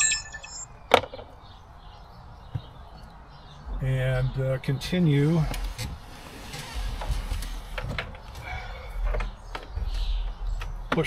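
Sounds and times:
short high electronic beep: 0:00.0 - 0:00.7.

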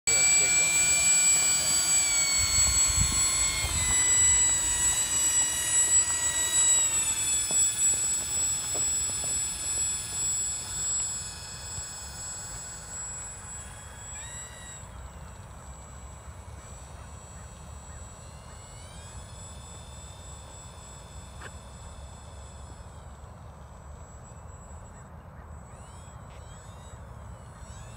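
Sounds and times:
model plane propellers: 0:00.1 - 0:27.9.

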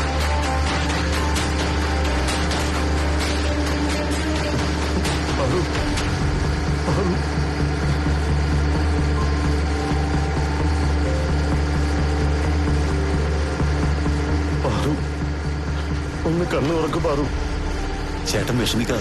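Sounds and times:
boat engine idling: 0:00.0 - 0:19.0.

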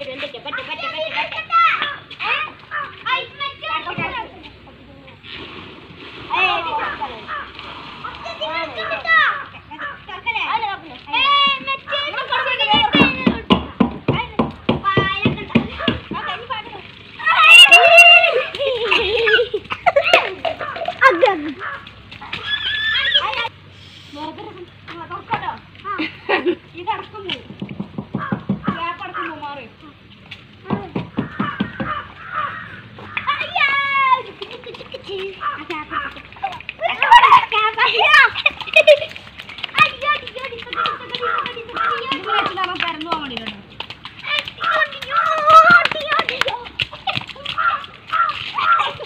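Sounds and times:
children calling and chattering: 0:00.0 - 0:05.5, 0:06.2 - 0:49.0
child squealing: 0:17.2 - 0:18.5, 0:22.3 - 0:23.5.

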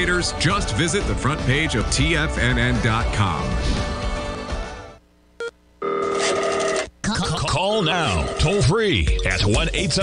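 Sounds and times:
telephone ringing: 0:05.8 - 0:06.9, 0:07.7 - 0:08.8.

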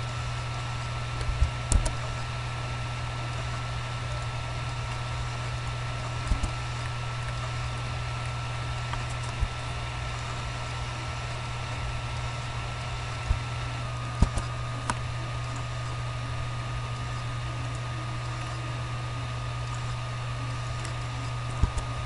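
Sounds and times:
electrical hum and hiss: 0:00.0 - 0:22.0.

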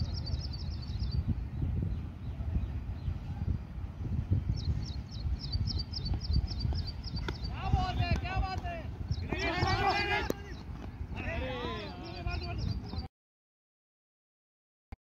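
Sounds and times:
high chirping: 0:00.0 - 0:02.3, 0:04.5 - 0:07.8
wind rumble on microphone: 0:00.0 - 0:13.1
players shouting: 0:07.5 - 0:12.6.

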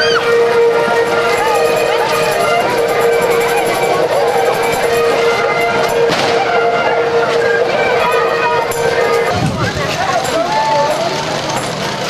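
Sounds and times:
bagpipes playing: 0:00.0 - 0:09.4.

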